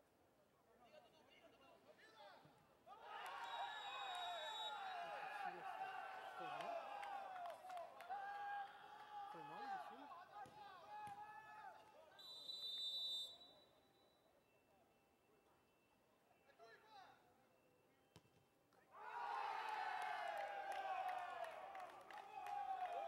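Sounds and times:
footballers shouting: 2.9 - 11.9, 19.0 - 23.0
referee's whistle blasts: 3.4 - 5.1, 12.1 - 14.2.

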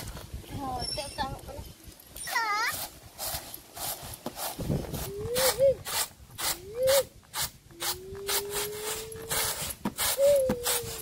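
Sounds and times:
high whining call: 7.8 - 11.0.

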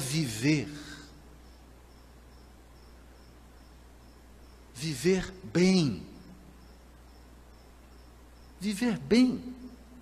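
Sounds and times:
insect chirping: 0.0 - 10.0
low steady hum: 0.0 - 10.0.

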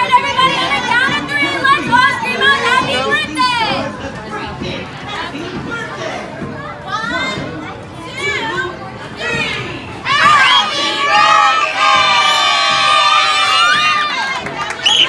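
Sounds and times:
children shouting and cheering: 9.2 - 15.0.

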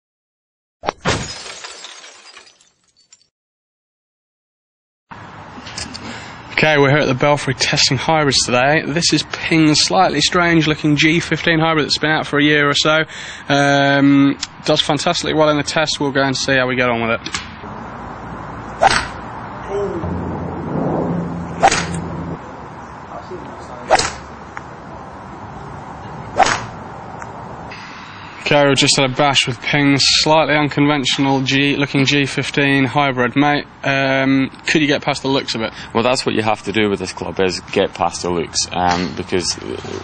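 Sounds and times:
golf club hitting ball: 18.8 - 19.3, 21.6 - 22.3, 23.9 - 24.6, 26.4 - 26.8
loud crash: 18.8 - 22.4
low steady hum: 19.4 - 23.4.

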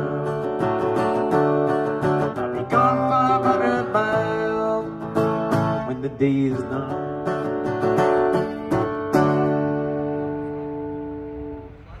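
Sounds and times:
acoustic guitar strumming: 0.0 - 11.8.

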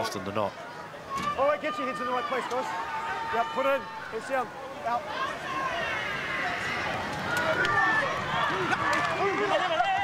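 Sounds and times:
men calling and shouting: 0.0 - 10.0
open-air ambience: 0.0 - 10.0
men laughing: 8.5 - 10.0.

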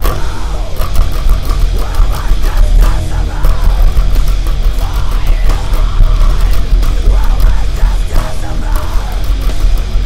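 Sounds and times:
distorted guitars: 0.0 - 10.0
drums: 0.0 - 10.0
electric bass: 0.0 - 10.0
heavy metal song: 0.0 - 10.0.

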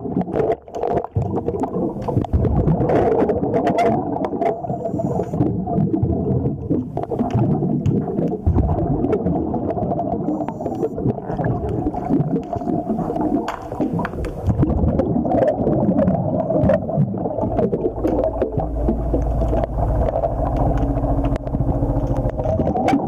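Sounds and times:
muffled underwater rumble: 0.0 - 23.0
sharp clicks and knocks: 17.6 - 23.0.

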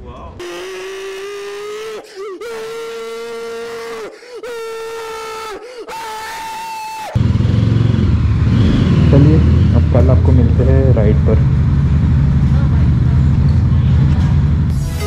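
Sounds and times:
motorcycle engine rumbling: 7.2 - 14.8.

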